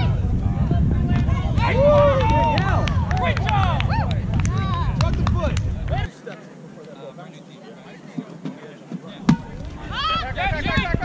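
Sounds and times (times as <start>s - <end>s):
wind rumbling on microphone: 0.0s - 6.1s, 9.2s - 11.0s
players shouting: 1.0s - 6.1s.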